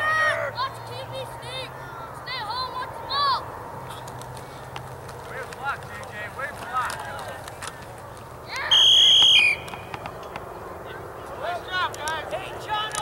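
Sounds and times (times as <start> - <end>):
referee's whistle blast: 8.7 - 9.7.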